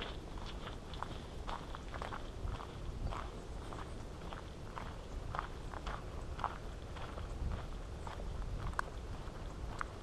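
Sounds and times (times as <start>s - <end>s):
footsteps on asphalt: 0.0s - 10.0s
low steady rumble: 0.0s - 10.0s.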